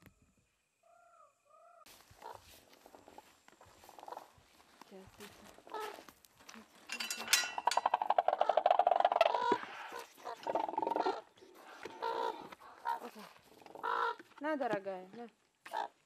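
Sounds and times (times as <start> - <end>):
metal gate rattling: 6.8 - 8.3.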